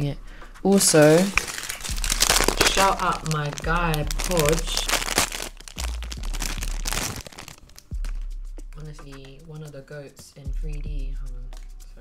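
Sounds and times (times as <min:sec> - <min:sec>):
plastic bag crinkling: 0:00.7 - 0:07.9.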